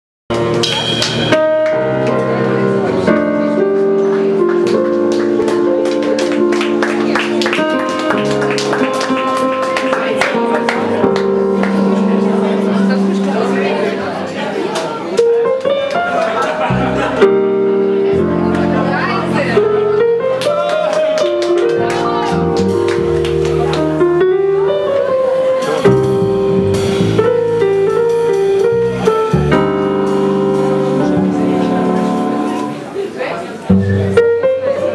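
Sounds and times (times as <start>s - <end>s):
jazz band playing: 0.3s - 34.9s
piano: 0.3s - 34.9s
cymbal hits: 0.6s - 1.6s
plucked double bass: 25.7s - 32.7s.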